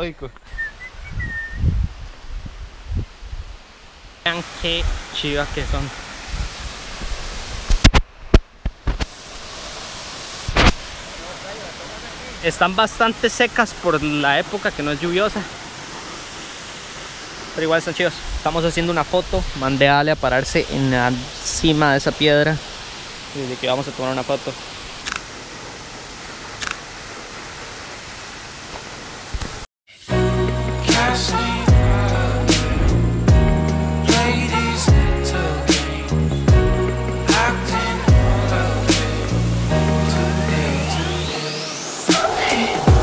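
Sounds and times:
steady rushing outdoor noise: 4.1s - 29.6s, 38.7s - 43.0s.

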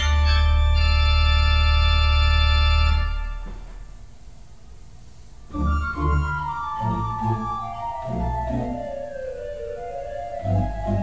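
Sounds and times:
deep organ pedal bass note: 0.0s - 3.6s
church organ chord: 0.0s - 3.7s, 5.5s - 11.0s.

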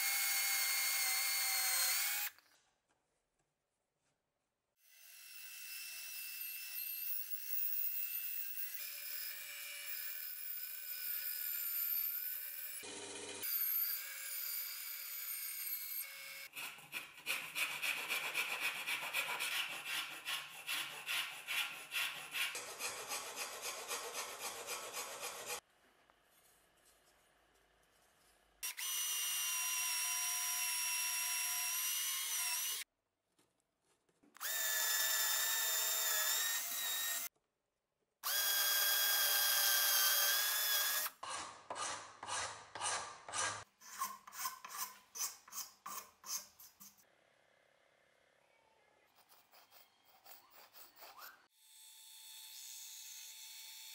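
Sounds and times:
electric drill boring into wood: 0.0s - 2.4s, 4.9s - 15.1s, 28.7s - 32.8s, 34.4s - 37.3s, 38.2s - 41.9s
band saw cutting: 5.1s - 25.6s, 38.3s - 47.0s
hand file on wood: 16.5s - 25.6s, 41.2s - 47.0s, 49.1s - 51.5s.

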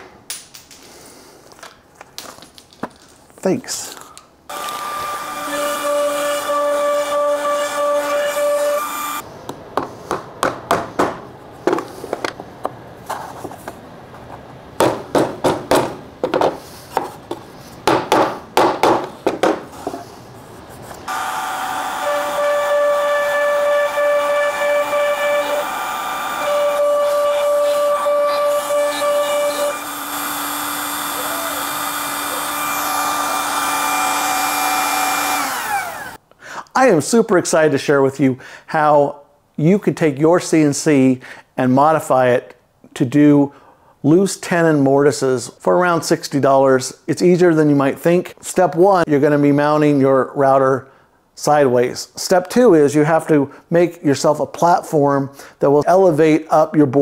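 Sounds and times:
router whining at high speed: 4.5s - 9.2s, 21.1s - 36.2s.

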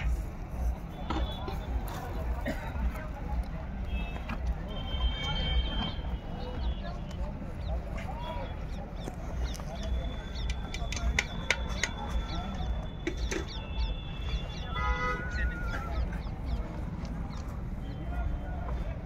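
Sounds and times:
murmur of distant voices: 0.0s - 19.0s.

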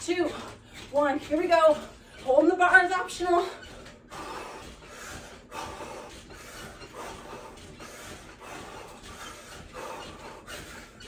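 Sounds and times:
woman breathing hard: 3.6s - 11.0s.

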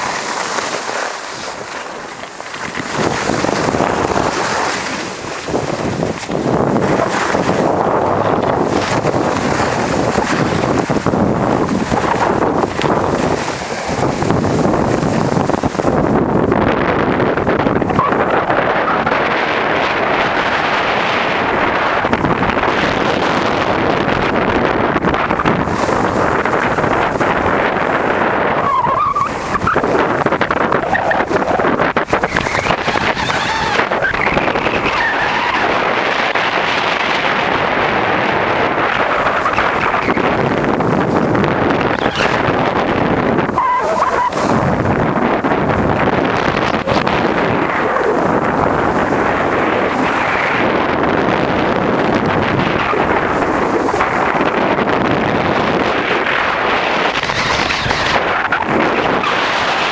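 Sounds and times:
skis scraping over packed snow: 0.0s - 16.2s
wind rushing over microphone: 0.0s - 59.9s.

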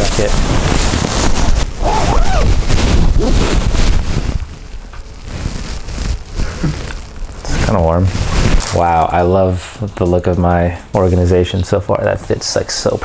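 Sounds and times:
nylon jacket rustling: 0.0s - 9.0s.

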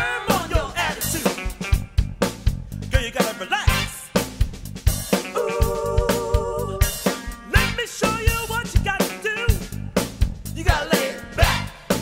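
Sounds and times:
drum kit beat: 0.0s - 12.0s
live band dance music: 0.0s - 12.0s.

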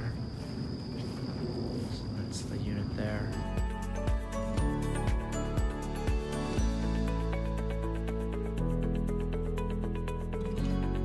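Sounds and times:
crickets trilling: 0.0s - 8.2s.

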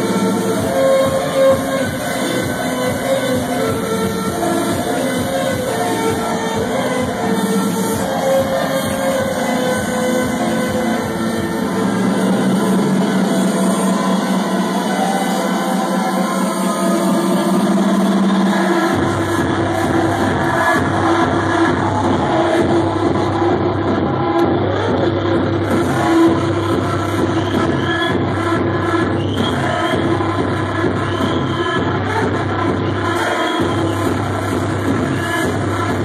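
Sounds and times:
electronic dance music: 0.0s - 36.0s
kick drum and bass: 0.0s - 36.0s.

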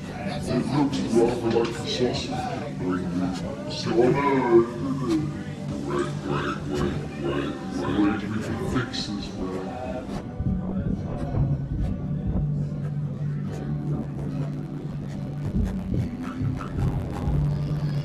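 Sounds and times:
faint indistinct voices: 0.0s - 18.0s
low droning tones: 0.0s - 18.0s.

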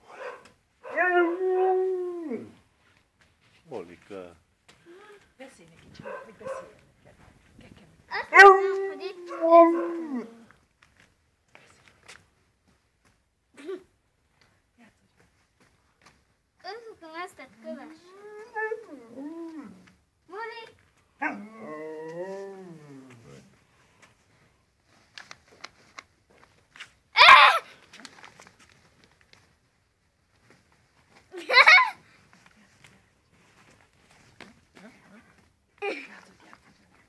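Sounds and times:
husky howling: 0.1s - 2.6s, 8.1s - 10.4s, 18.0s - 19.8s, 21.2s - 23.3s, 27.2s - 27.6s
husky call falling in pitch: 27.2s - 27.7s.

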